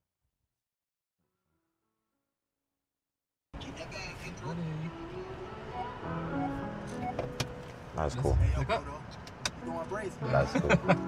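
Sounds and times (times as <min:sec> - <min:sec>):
music from car stereo: 0:03.7 - 0:08.0, 0:10.2 - 0:11.0.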